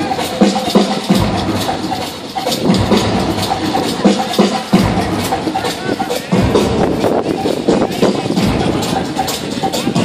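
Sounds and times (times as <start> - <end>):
loud music with steady beat: 0.0 - 10.0.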